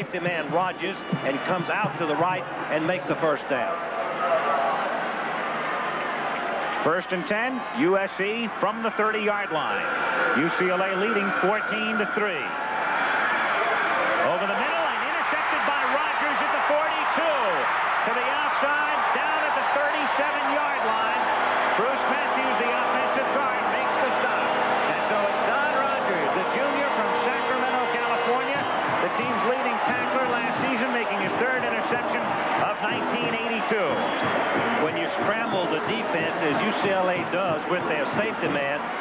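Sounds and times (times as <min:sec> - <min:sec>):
stadium crowd cheering: 0:00.0 - 0:39.0.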